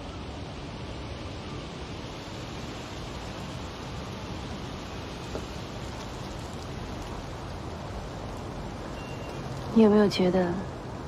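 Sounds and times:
outdoor ambience hiss: 0.0s - 11.0s.

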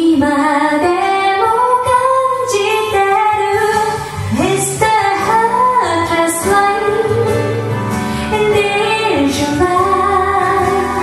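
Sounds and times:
woman singing slow song: 0.0s - 11.0s.

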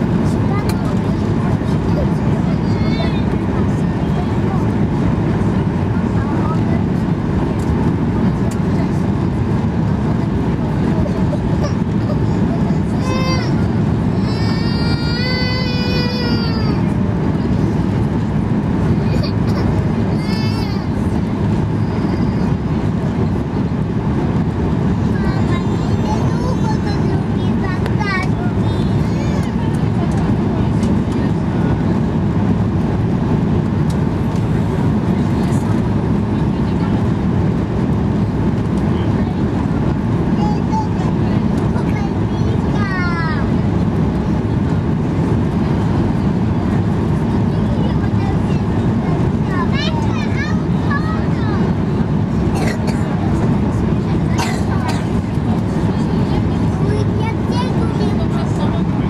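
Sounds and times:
airplane engine drone: 0.0s - 59.0s.

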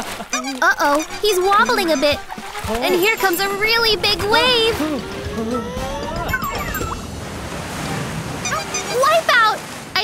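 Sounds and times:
ocean wave breaking: 0.0s - 10.0s.

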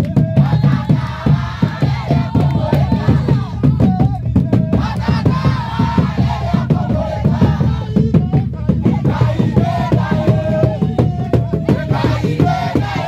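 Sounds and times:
congregation singing and chanting: 0.0s - 13.0s
rhythmic hand clapping: 0.0s - 13.0s.

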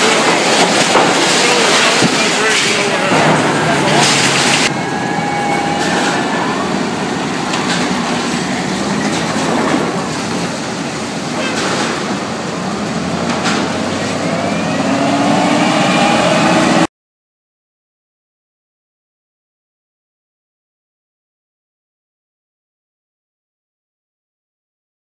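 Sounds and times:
forklift engine running: 0.0s - 16.9s.

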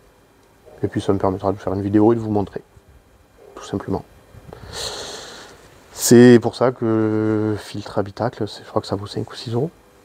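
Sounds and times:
man breathing in: 4.5s - 5.7s.

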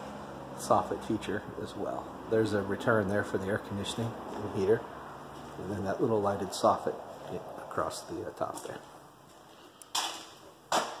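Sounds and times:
footsteps on concrete: 5.3s - 5.6s, 8.5s - 11.0s.

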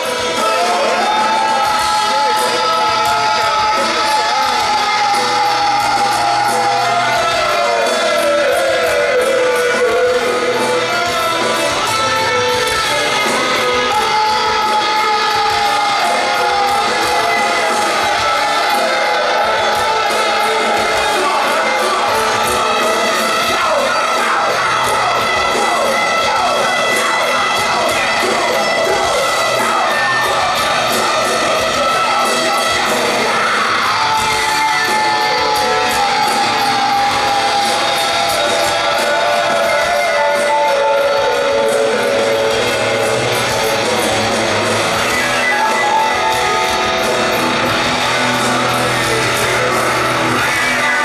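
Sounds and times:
rock band playing live: 0.0s - 51.0s.

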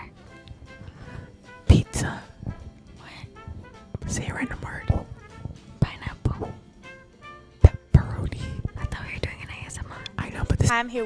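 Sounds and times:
people whispering: 1.7s - 3.4s, 4.0s - 5.1s, 5.8s - 6.6s, 7.6s - 10.7s.

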